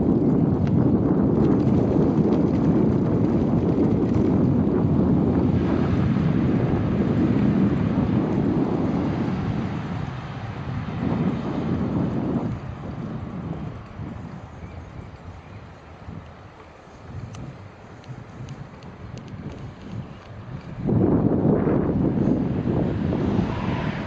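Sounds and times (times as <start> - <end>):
tyres on asphalt: 0.0 - 24.0
wind buffeting microphone: 0.0 - 24.0.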